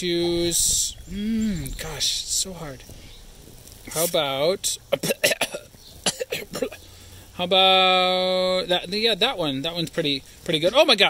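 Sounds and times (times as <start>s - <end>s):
person coughing: 5.0s - 6.8s.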